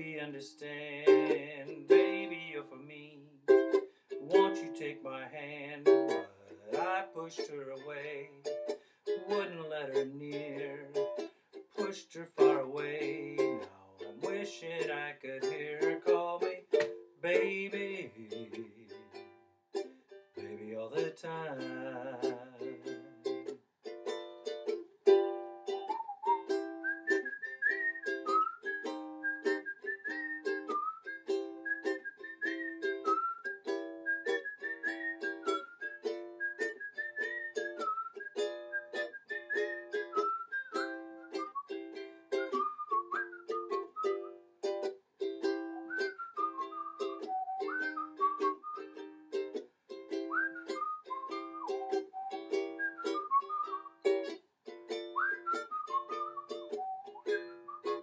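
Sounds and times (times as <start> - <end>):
ukulele strummed: 0.0 - 58.0
whistled melody: 3.5 - 5.0, 5.9 - 17.7, 24.1 - 58.0.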